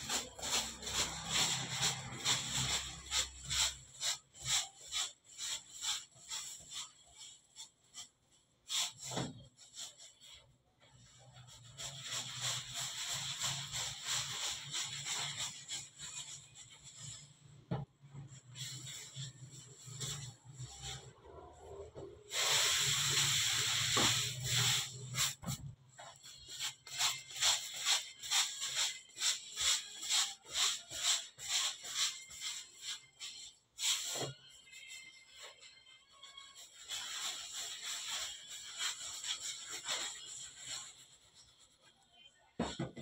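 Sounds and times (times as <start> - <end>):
dough being rolled by hand: 0.0 - 43.0.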